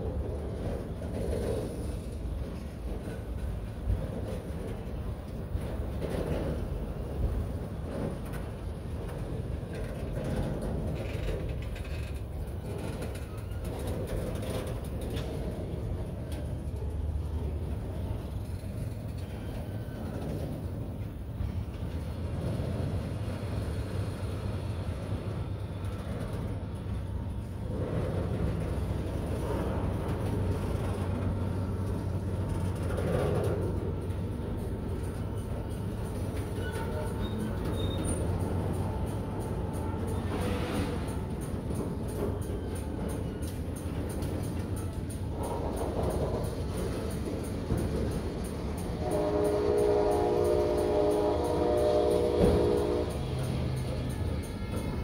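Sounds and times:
steel wheels rumbling on rail: 0.0s - 55.0s
train cars knocking and clanking: 0.0s - 55.0s.

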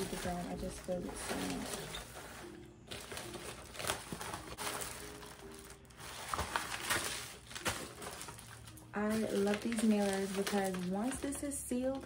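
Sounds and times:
faint background music: 0.0s - 12.0s
packaging rustling and crinkling: 0.0s - 12.0s.

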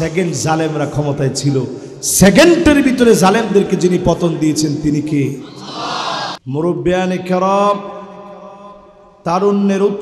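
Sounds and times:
man chanting through loudspeaker: 6.5s - 10.0s.

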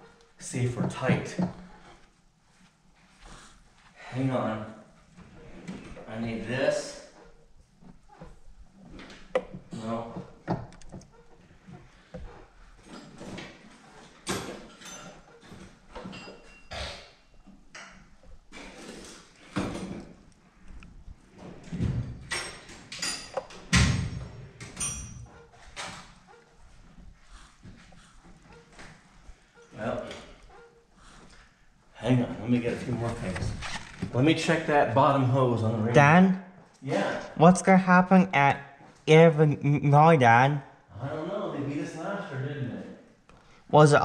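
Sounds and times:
tools and parts clattering: 12.8s - 20.3s, 21.4s - 26.4s.

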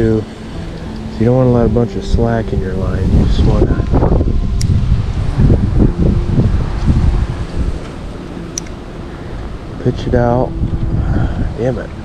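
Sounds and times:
wind buffeting microphone: 0.0s - 12.0s
faint sharp ticks: 4.6s - 4.8s.

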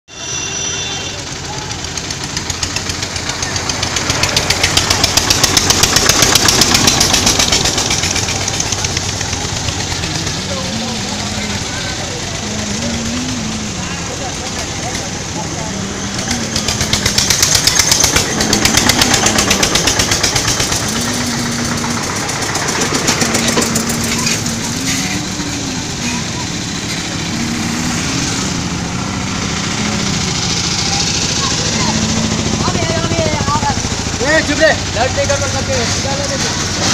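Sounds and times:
vehicle engine puttering: 0.2s - 36.9s
person singing wavering melody: 9.9s - 32.7s.

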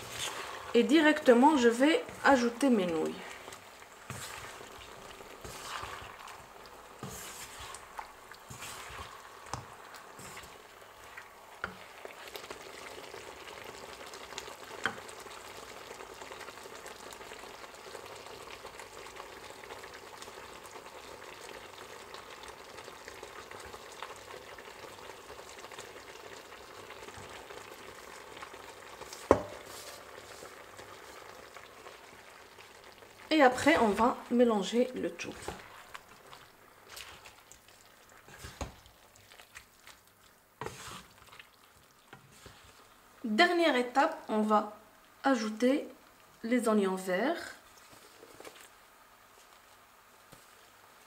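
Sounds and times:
food sizzling in a frying pan: 0.0s - 51.0s
spatula stirring and tapping pan: 2.0s - 10.6s, 14.8s - 15.1s, 29.0s - 30.5s, 35.2s - 42.8s.

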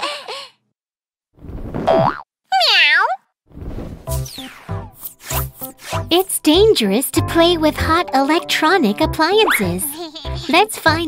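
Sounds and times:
rising swoosh: 3.5s - 6.1s.

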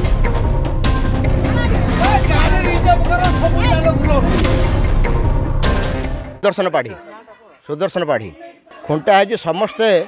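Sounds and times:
bass-heavy background music: 0.0s - 6.4s
people speaking loudly: 1.3s - 4.7s, 6.4s - 10.0s.

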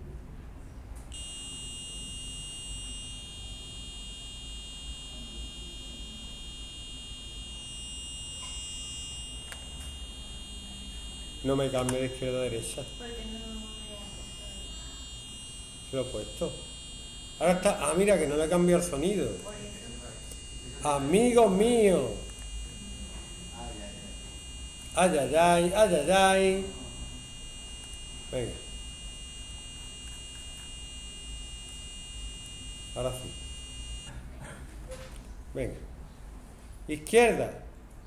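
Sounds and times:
low mains hum: 0.0s - 38.0s
steady electronic buzzing tone: 1.1s - 34.2s.

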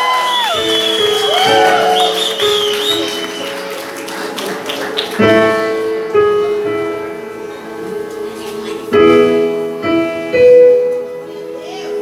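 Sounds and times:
audience whooping and cheering: 0.0s - 5.3s
people clapping: 0.0s - 5.7s.

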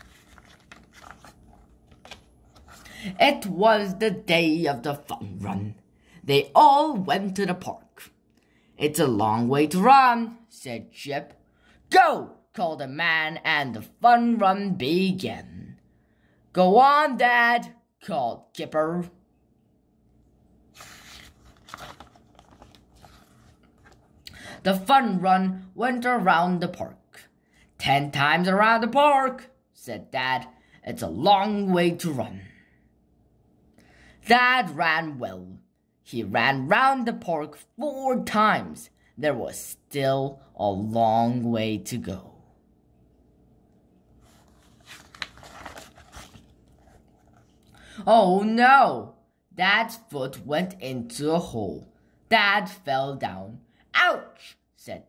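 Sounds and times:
paper crinkling: 0.0s - 3.0s, 20.8s - 24.2s, 44.2s - 47.7s
paper page turning: 0.0s - 3.2s, 20.7s - 24.2s, 44.2s - 47.7s.

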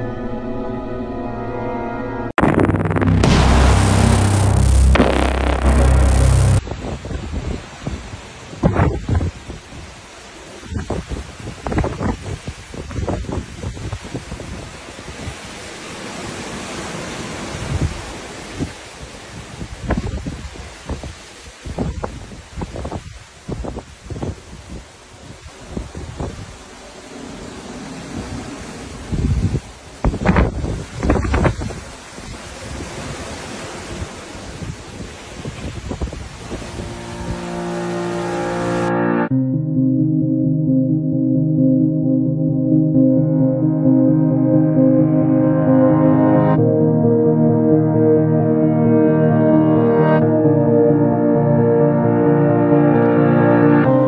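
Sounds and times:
music: 0.0s - 6.6s, 36.5s - 54.0s
wind buffeting microphone: 6.6s - 10.0s, 10.6s - 15.6s, 17.5s - 26.8s, 28.0s - 37.5s.

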